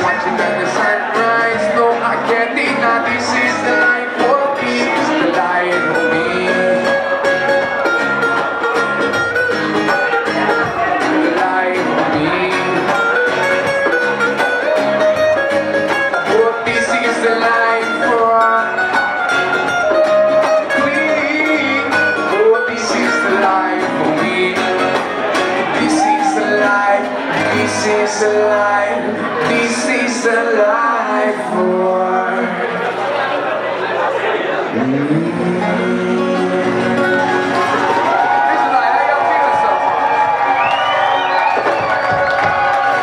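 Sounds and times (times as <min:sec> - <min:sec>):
people singing: 0:00.0 - 0:07.2, 0:16.3 - 0:18.8, 0:20.7 - 0:24.8, 0:25.7 - 0:32.9, 0:34.7 - 0:37.8
acoustic guitars strummed: 0:00.0 - 0:43.0.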